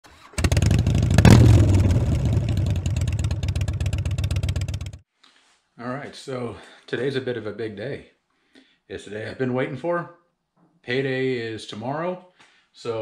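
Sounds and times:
motorcycle engine starting and revving: 0:00.0 - 0:05.0.

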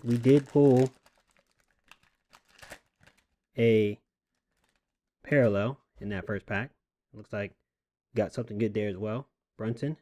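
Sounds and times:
foil wrapper crinkling: 0:00.0 - 0:03.5, 0:04.3 - 0:05.0.

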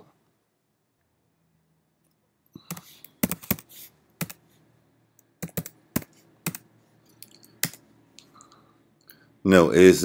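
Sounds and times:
computer keyboard keys clicking: 0:02.7 - 0:04.4, 0:05.4 - 0:06.6, 0:07.2 - 0:07.8.

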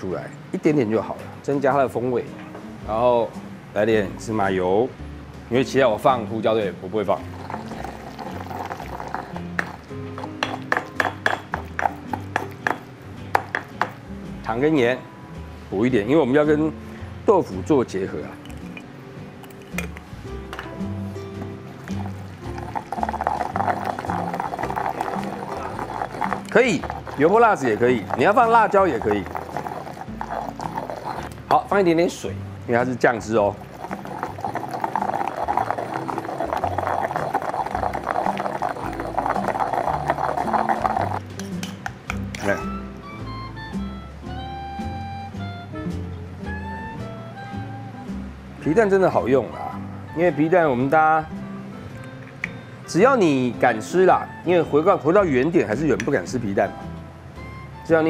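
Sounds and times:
background music: 0:00.0 - 0:58.0
stone pestle grinding in mortar: 0:07.3 - 0:14.0, 0:21.8 - 0:31.8, 0:33.4 - 0:41.8
stone pestle knocking in mortar: 0:09.2 - 0:14.0.

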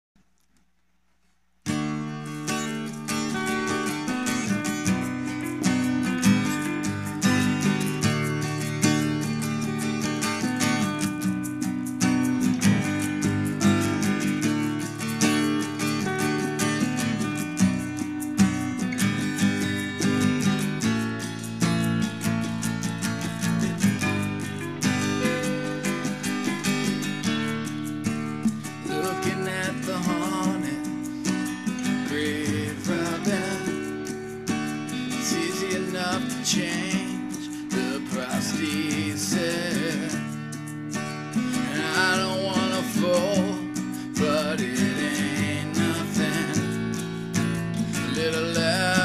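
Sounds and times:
acoustic guitar music: 0:00.2 - 0:49.0.

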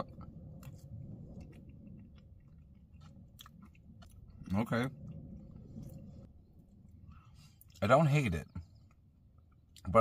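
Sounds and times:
soft chewing with crunches: 0:00.0 - 0:09.9.

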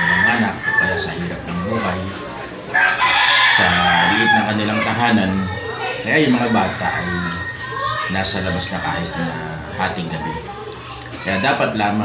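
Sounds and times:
rooster crowing: 0:00.0 - 0:01.2, 0:02.7 - 0:04.8.

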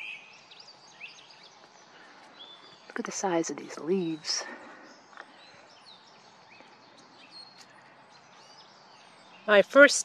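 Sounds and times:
birds chirping and whistling: 0:00.0 - 0:09.5.

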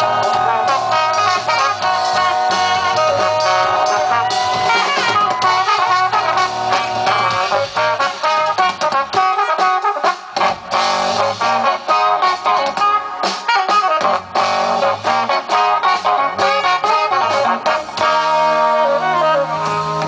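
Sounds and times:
bass guitar: 0:00.0 - 0:20.0
drum kit: 0:00.0 - 0:20.0
trombone and saxophone horn lines: 0:00.0 - 0:20.0
electric guitar: 0:10.4 - 0:20.0.

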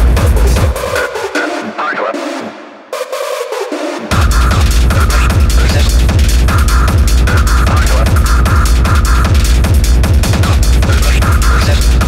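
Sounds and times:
hard techno track: 0:00.0 - 0:12.0.

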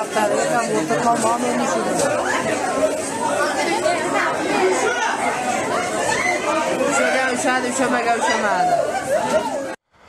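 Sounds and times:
crowd voices talking: 0:00.0 - 0:09.8.

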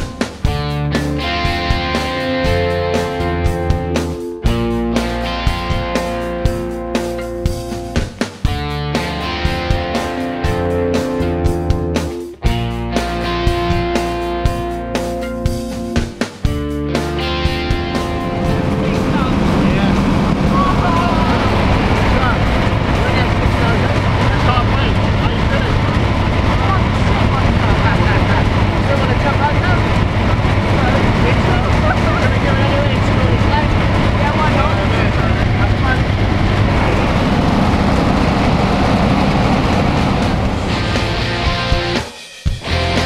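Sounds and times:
plane engine and propeller drone: 0:17.2 - 0:42.0
indistinct voices: 0:18.2 - 0:41.5.

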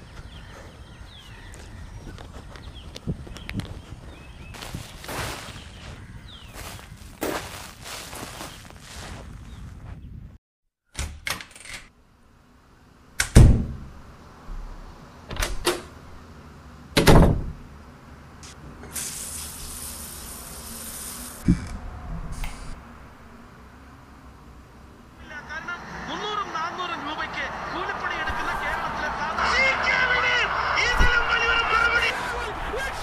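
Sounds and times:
small birds chirping: 0:00.0 - 0:10.3.

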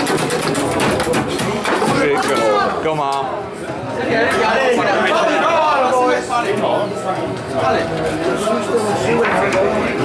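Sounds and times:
foosball table clatter: 0:00.0 - 0:02.6.

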